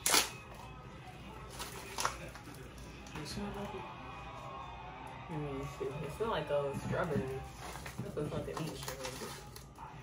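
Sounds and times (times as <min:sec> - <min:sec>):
plastic wrapper tearing: 0:00.0 - 0:00.6, 0:01.5 - 0:02.7, 0:07.6 - 0:09.9.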